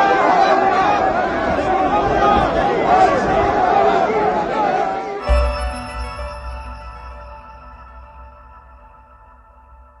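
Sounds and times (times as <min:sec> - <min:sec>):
sustained jingle chord: 0:05.2 - 0:10.0.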